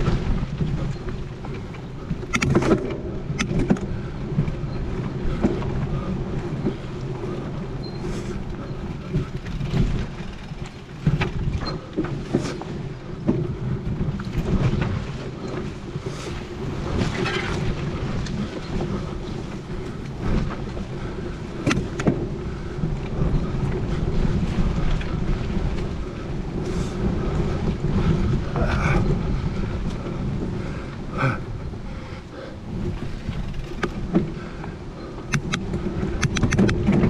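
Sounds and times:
bike knocks and rattles: 0.0 - 31.9, 32.6 - 37.0
bike tyres rumbling: 0.0 - 37.0
wind buffeting microphone: 0.0 - 37.0.

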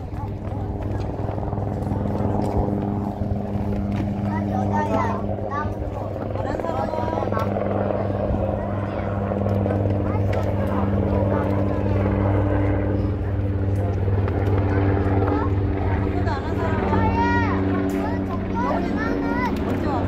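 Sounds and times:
faint voices chattering: 0.0 - 20.0
low machine hum: 0.0 - 20.0.

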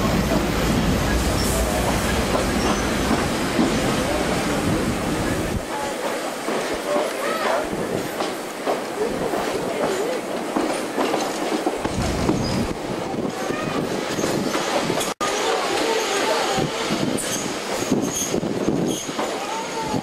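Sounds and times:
railway wheel and track noise: 0.0 - 20.0.

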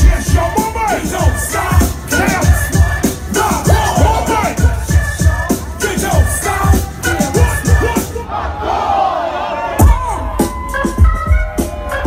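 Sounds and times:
bass-heavy hip-hop beat: 0.0 - 8.3, 9.8 - 12.0
concert crowd shouting: 0.0 - 12.0.

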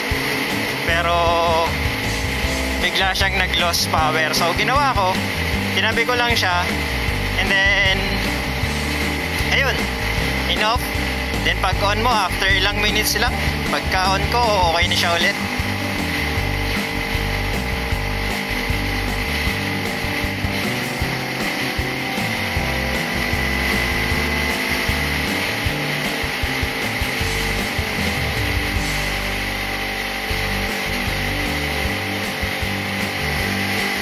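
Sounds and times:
background music with bass line: 0.0 - 34.0.

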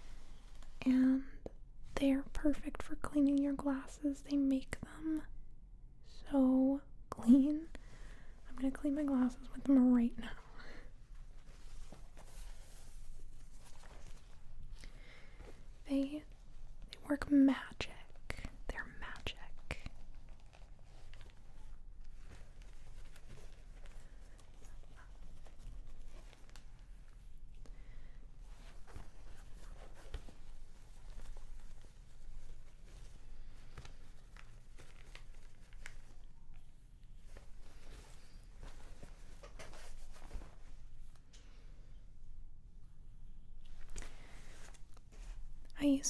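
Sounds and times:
soft cloth rustling: 0.0 - 4.2, 6.2 - 46.0.

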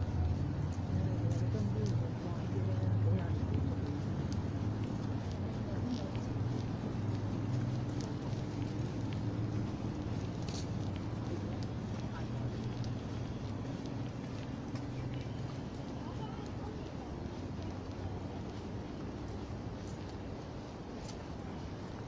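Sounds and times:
footsteps on paved path: 0.0 - 22.0.

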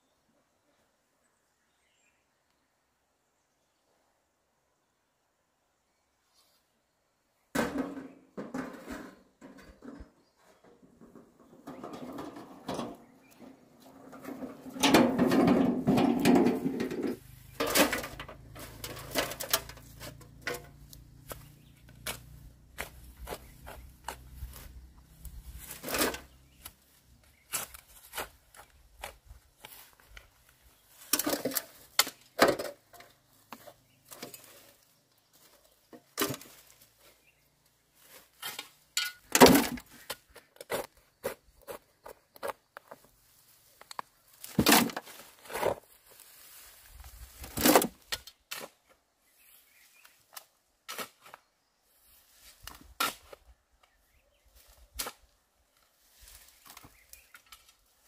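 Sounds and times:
metal wheelbarrow rattling: 7.6 - 28.3, 30.9 - 34.8, 38.3 - 40.1.

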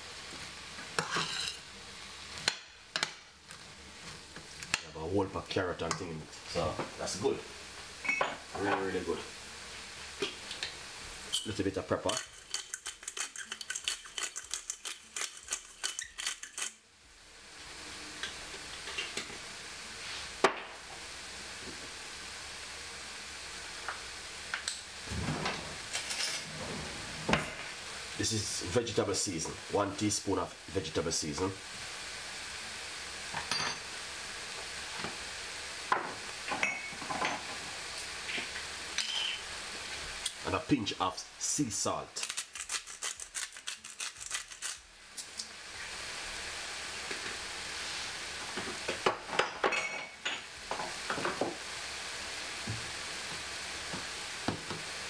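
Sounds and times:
vegetables sizzling in a pan: 0.0 - 55.0
pepper mill grinding: 11.4 - 16.8, 42.2 - 45.5
metal utensils clinking on pan: 33.4 - 33.9, 36.5 - 37.5, 39.0 - 39.4.

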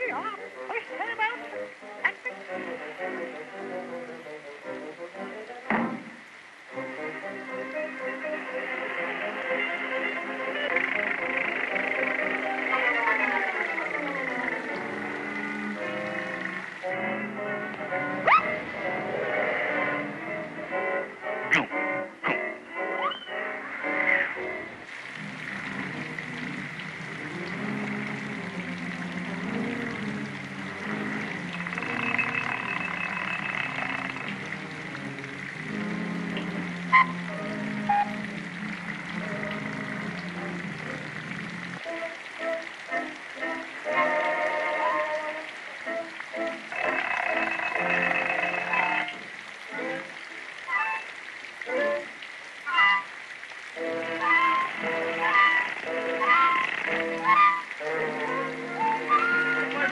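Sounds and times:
cartoon music score: 6.7 - 53.2, 53.8 - 59.9.

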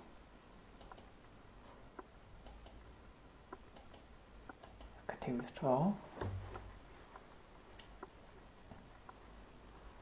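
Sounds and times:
low room noise: 0.0 - 10.0
faint irregular ticks and clicks: 0.7 - 5.6, 6.2 - 9.3.

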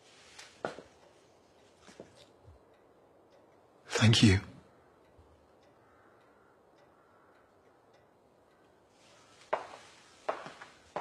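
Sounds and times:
clock ticking faintly: 0.7 - 9.7.

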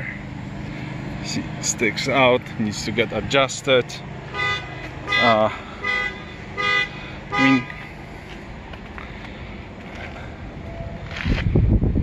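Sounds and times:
wind buffeting microphone: 10.4 - 12.0.

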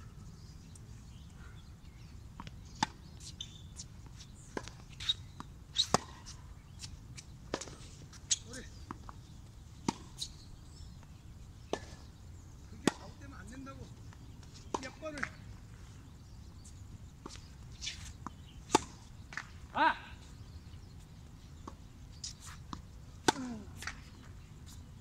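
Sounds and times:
tennis ball hits and bounces: 5.8 - 6.3, 7.5 - 9.2, 9.8 - 10.2, 11.7 - 12.0, 12.8 - 13.6, 14.7 - 15.4, 17.2 - 19.6, 21.6 - 24.3.

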